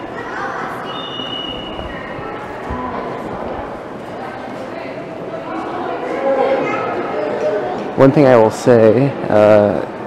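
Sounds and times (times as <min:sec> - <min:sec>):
distant voices: 0:00.0 - 0:08.5
faint high tone: 0:00.8 - 0:02.9.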